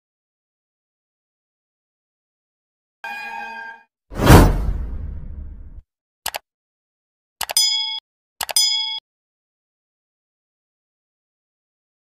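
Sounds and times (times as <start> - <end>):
whoosh with deep boom: 4.2 - 5.8
bright chime dings: 7.6 - 9.0.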